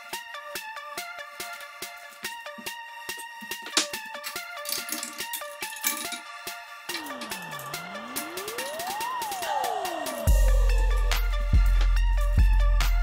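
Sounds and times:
tone sweeping down and up: 6.9 - 11.5
synth melody: 6.9 - 11.9
ticking electronic beat: 6.9 - 12.9.

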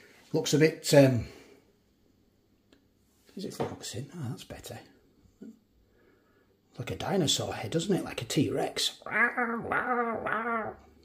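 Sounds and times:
man imitating a roar: 9.0 - 10.9.

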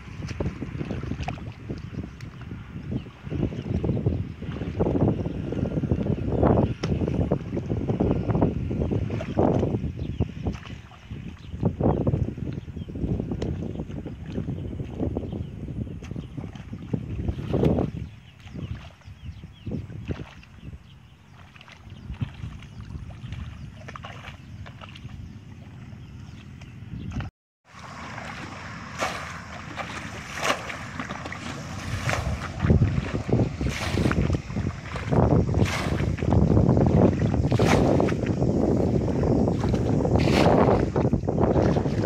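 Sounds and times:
bucket splashing muddy water: 0.0 - 2.7, 21.4 - 25.8, 27.2 - 42.0
hoe working wet mud: 0.0 - 42.0.

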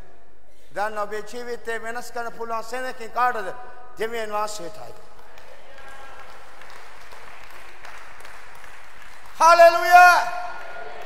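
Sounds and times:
congregation clapping: 4.8 - 11.0.

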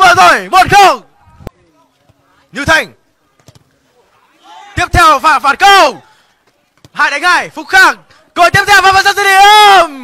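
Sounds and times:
man talking: 0.0 - 3.0, 4.8 - 6.1, 6.9 - 10.0.

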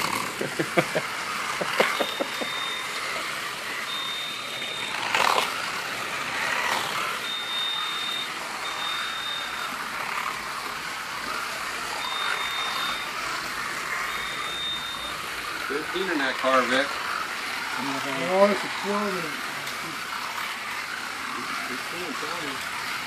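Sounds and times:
slot car motors whirring: 0.0 - 23.0
high steady tone: 1.0 - 23.0.

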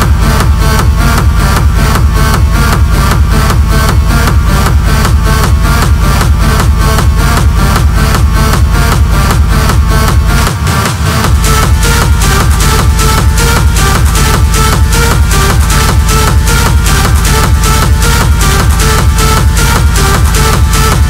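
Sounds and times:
heavy bass: 0.0 - 21.0
techno dance beat: 0.0 - 21.0.

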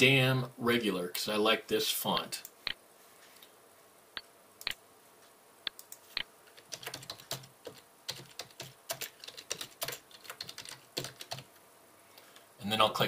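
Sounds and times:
keyboard typing: 5.7 - 11.6.

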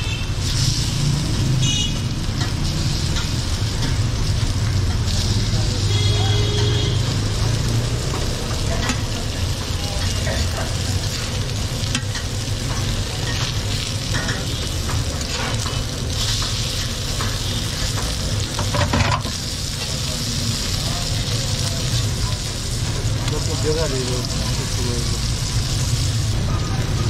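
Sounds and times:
food sizzling on a griddle: 0.0 - 27.0
metal spatula scraping griddle: 11.9 - 20.0.

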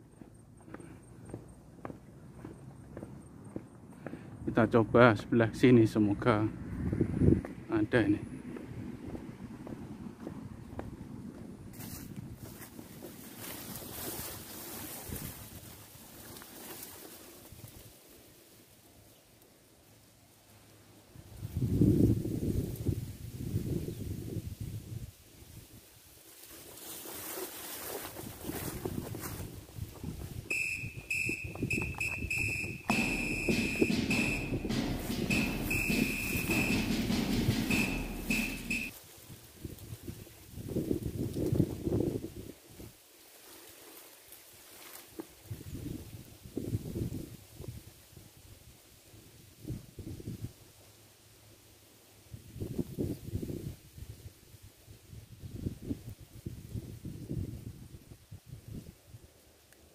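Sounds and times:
wind gusting on microphone: 6.3 - 15.8, 21.2 - 25.8, 28.2 - 36.7, 39.6 - 42.9, 45.5 - 47.9.

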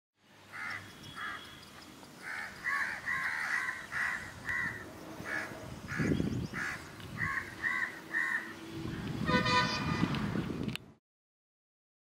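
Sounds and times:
birds harsh calls: 0.5 - 10.5.

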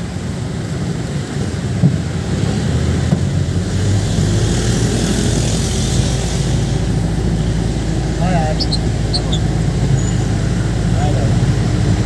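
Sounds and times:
vehicle engine low rumble: 0.0 - 12.0.

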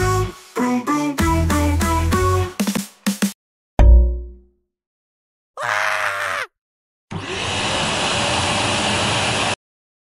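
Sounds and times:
vacuum cleaner running: 7.1 - 9.6.

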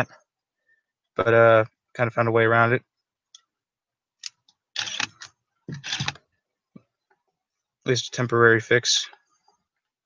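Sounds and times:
camera shutter clicking: 4.8 - 5.2.

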